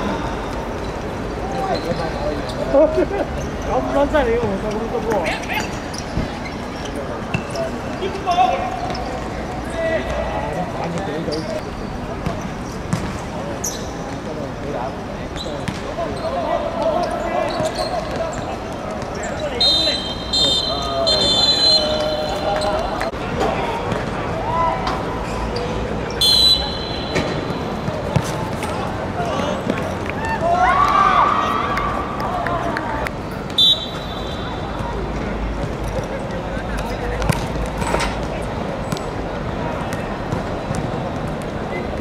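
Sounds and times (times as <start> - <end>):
voices calling out: 13.6 - 42.0
footballers shouting: 16.2 - 25.0, 26.2 - 35.1.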